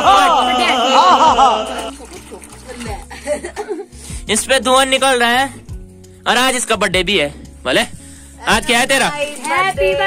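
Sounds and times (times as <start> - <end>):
water pouring into plastic bucket: 1.6 - 3.2.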